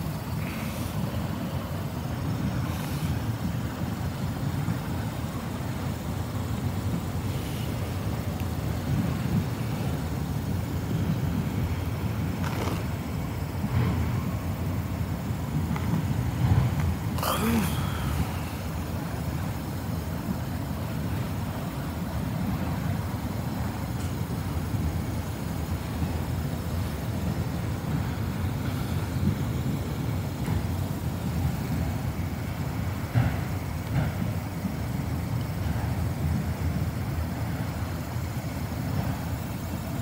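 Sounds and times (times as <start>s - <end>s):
train wheels rumbling on rail: 0.0s - 40.0s.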